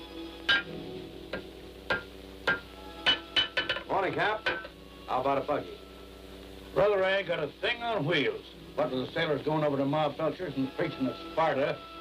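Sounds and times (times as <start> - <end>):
hammer striking anvil: 0.5 - 0.7, 1.3 - 4.7.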